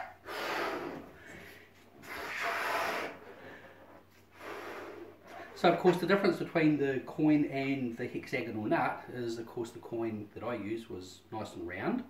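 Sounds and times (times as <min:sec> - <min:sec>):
breaths blowing up balloon: 0:00.0 - 0:05.6.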